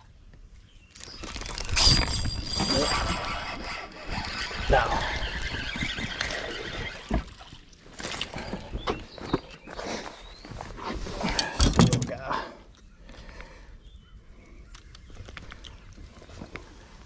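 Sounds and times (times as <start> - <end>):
high squeal: 1.5 - 7.2
fishing reel whirring: 1.8 - 7.1.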